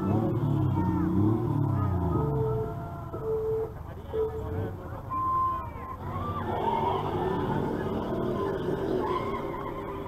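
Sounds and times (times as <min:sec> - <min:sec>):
low electronic beeps: 0:02.0 - 0:05.7.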